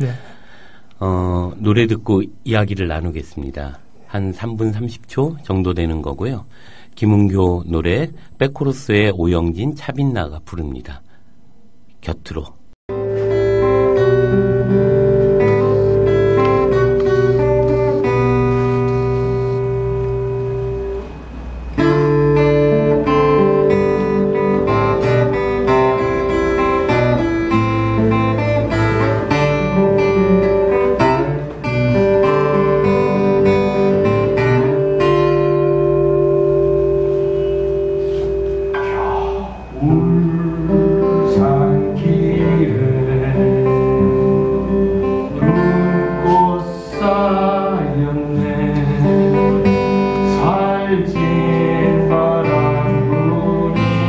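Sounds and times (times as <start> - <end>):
acoustic guitars strumming: 12.9 - 54.0.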